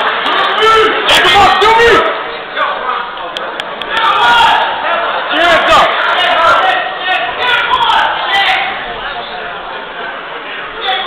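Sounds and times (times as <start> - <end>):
spectators shouting and talking: 0.0 - 11.0.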